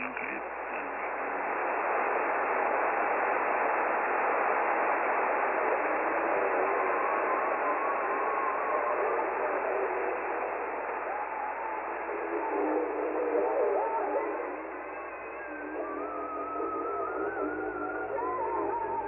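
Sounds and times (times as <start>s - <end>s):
radio static hiss: 0.0s - 19.0s
wavering whistle-like tones: 11.0s - 19.0s.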